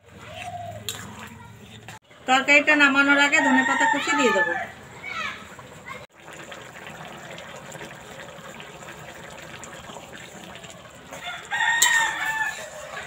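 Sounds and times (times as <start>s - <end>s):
rooster crowing: 3.2s - 4.8s, 11.1s - 13.0s.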